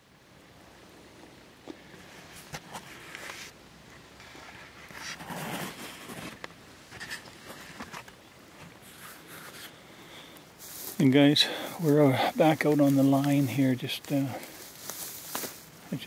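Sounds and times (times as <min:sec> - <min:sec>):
clothing rustling: 0:10.6 - 0:16.0.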